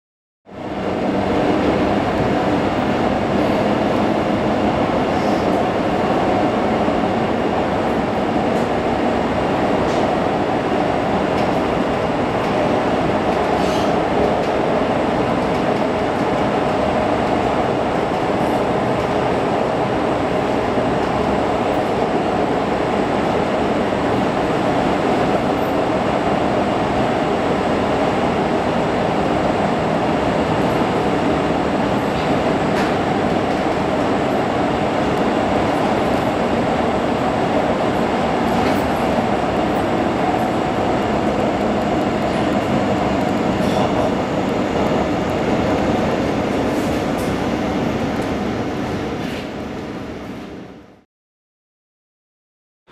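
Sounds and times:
train wheels rumbling on track: 0.5s - 50.9s.

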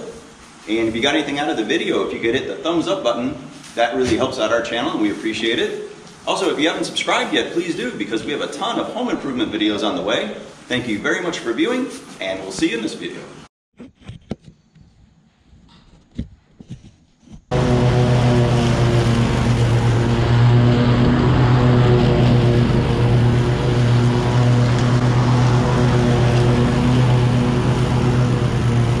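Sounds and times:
riding mower engine running: 17.5s - 29.0s.

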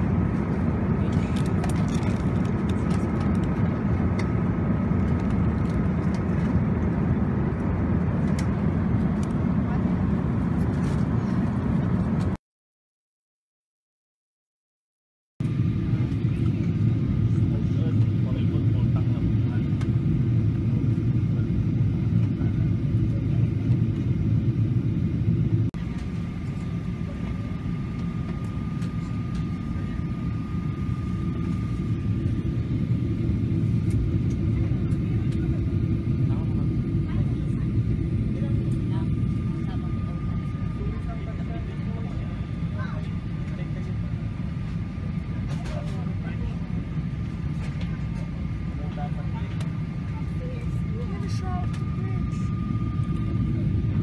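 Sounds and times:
jet engines and airflow rumble: 0.0s - 12.4s, 15.4s - 54.0s.

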